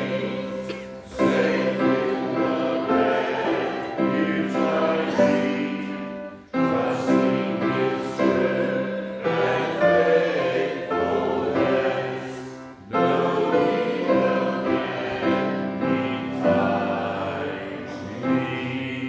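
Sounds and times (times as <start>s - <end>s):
congregation singing a psalm: 0.0s - 19.0s.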